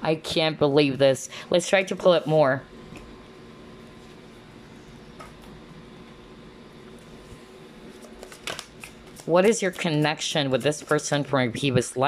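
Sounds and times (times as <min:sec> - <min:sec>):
cards being shuffled: 0:07.9 - 0:11.1.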